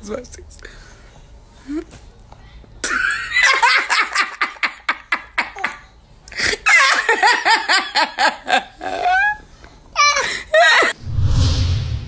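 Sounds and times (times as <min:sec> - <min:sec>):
woman laughing hard: 0:02.9 - 0:09.4, 0:10.2 - 0:11.0
low rumbling noise: 0:11.0 - 0:12.0.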